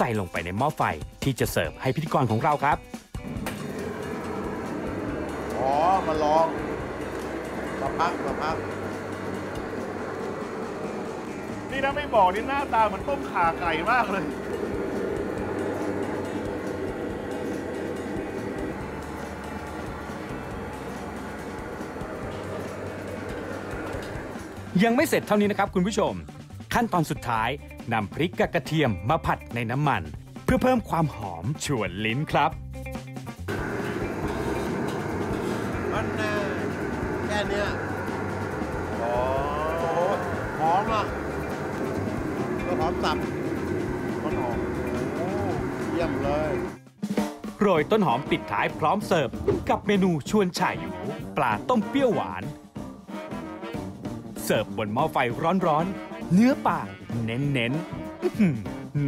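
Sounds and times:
background music: 0.0 - 59.0
gas burners and extraction roar: 2.1 - 26.3, 33.3 - 46.9, 47.7 - 58.2.

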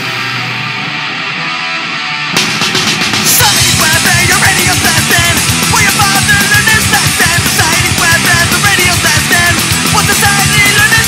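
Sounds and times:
drums and full band: 0.0 - 11.0
punk rock guitar: 0.0 - 11.0.

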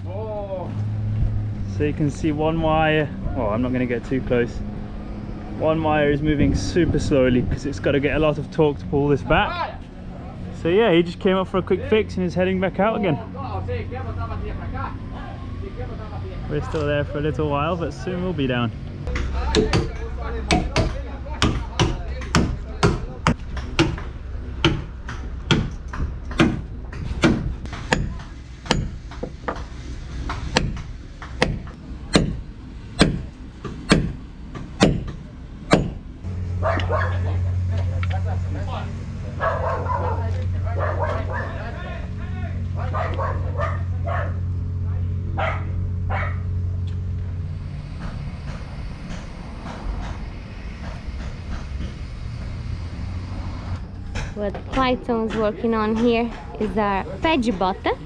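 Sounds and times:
metal-on-metal hammering: 19.1 - 36.0, 54.1 - 57.8
low machine hum: 22.4 - 58.0.

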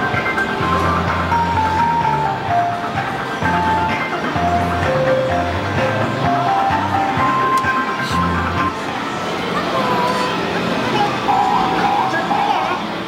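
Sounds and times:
simple electronic melody: 0.0 - 9.2.

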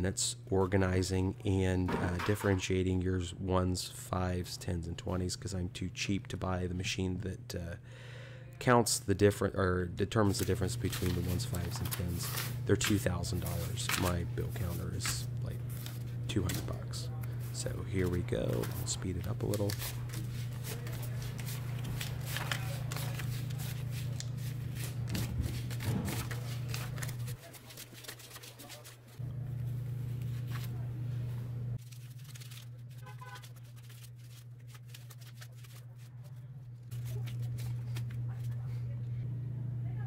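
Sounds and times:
steady low hum: 0.0 - 27.5, 28.9 - 40.0
paper banknotes rustling: 10.1 - 38.9.

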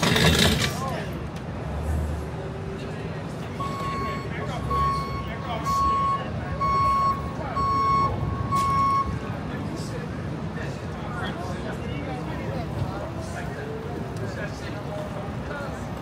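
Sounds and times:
street traffic rumble: 0.0 - 16.0
vehicle reversing alarm beeping: 3.5 - 9.5.

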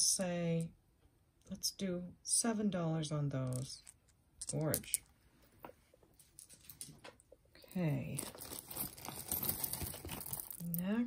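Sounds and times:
plastic bag crinkling: 8.0 - 10.7.

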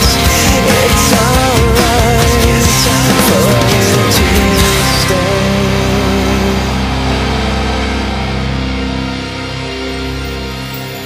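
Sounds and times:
distorted guitar chord ringing: 0.0 - 11.0.

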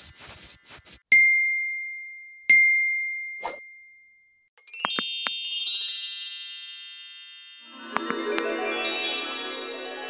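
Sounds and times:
bell-like ding: 1.1 - 5.4.

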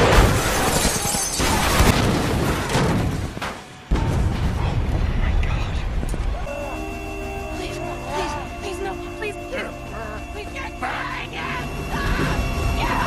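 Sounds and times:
crashing and smashing: 0.0 - 4.6
booms: 0.0 - 6.3
orchestral music: 6.5 - 13.0.

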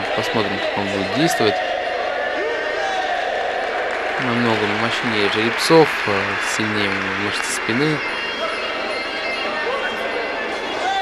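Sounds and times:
people shouting: 0.0 - 5.1
indistinct crowd noise: 0.0 - 11.0.

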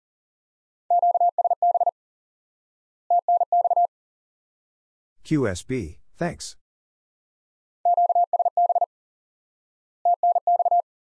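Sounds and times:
morse code beeps: 0.9 - 1.9, 3.1 - 3.9, 7.9 - 8.9, 10.1 - 10.8.

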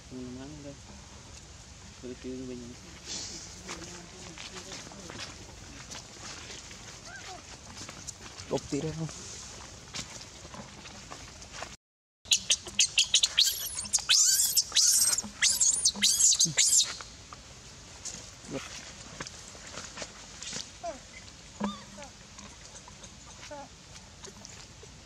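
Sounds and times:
baby monkey screaming: 12.3 - 17.0.

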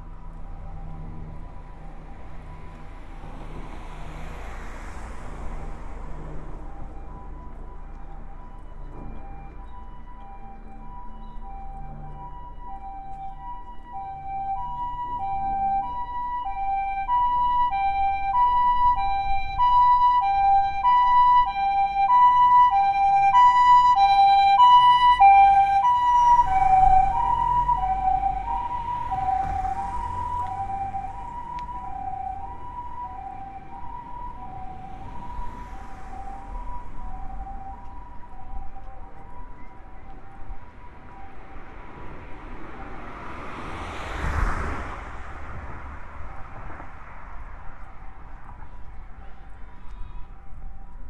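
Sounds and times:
two-tone ambulance siren: 0.0 - 51.0
vehicle rushing by: 0.7 - 7.2, 22.5 - 37.7, 41.6 - 48.5.

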